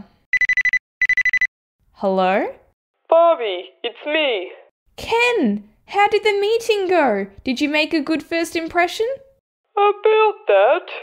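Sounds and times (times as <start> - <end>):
phone ringtone trills: 0.4 - 1.5.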